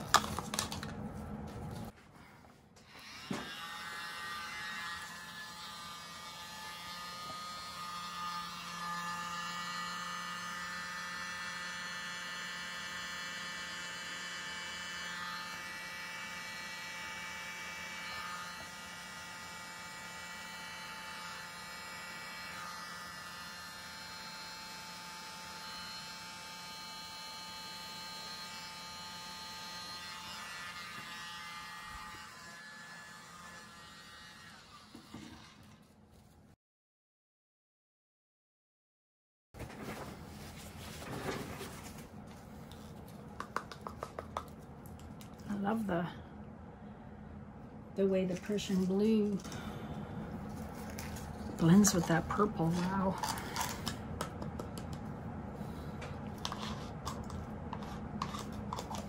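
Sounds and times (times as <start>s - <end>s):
small electric motor whirring: 2.9s - 35.8s.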